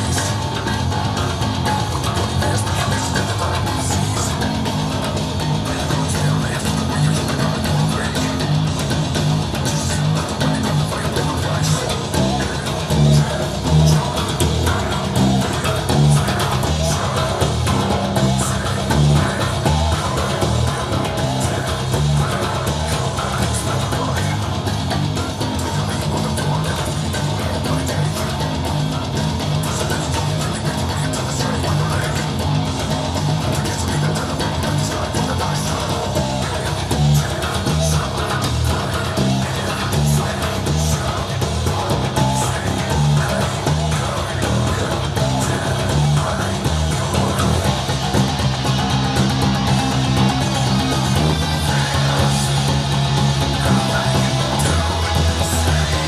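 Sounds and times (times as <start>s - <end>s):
electric bass metal riff: 0.0s - 56.0s.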